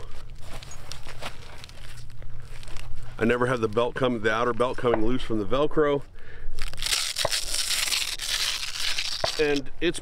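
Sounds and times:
nylon belt and pouches rustling: 0.0s - 3.9s, 6.6s - 9.6s
low hum: 0.0s - 10.0s.

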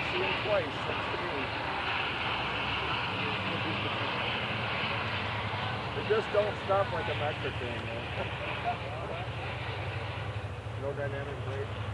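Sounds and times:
distant diesel locomotive rumble: 0.0s - 11.9s.

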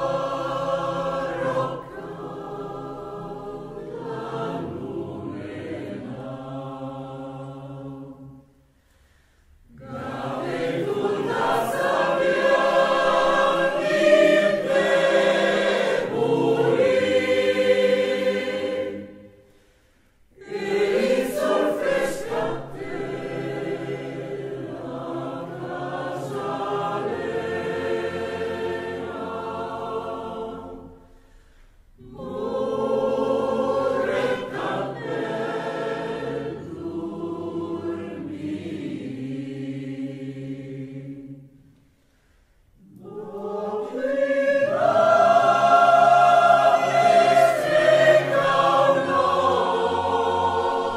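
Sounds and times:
mixed choir singing folk song: 0.0s - 50.9s.

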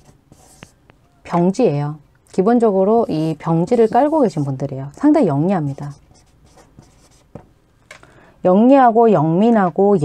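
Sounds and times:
chalk scratching on chalkboard: 0.0s - 0.8s, 3.0s - 4.6s, 5.7s - 7.4s
chalk tapping on chalkboard: 0.0s - 0.8s.

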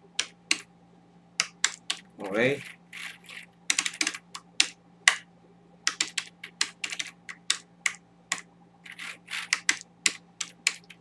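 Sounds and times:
computer keyboard typing: 0.2s - 0.6s, 1.4s - 2.1s, 3.0s - 5.2s, 5.9s - 11.0s.

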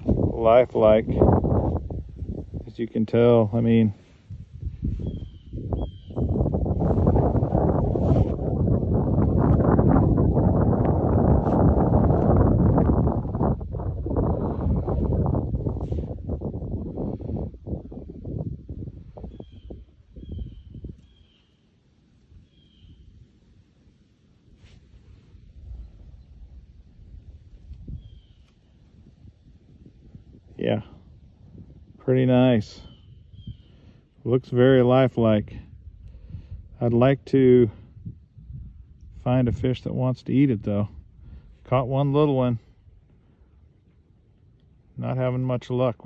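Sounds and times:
wind gusting across microphone: 0.0s - 46.0s
faint bird chirps: 4.8s - 6.5s, 19.2s - 21.6s, 22.4s - 23.2s, 27.9s - 28.7s, 32.8s - 33.9s.

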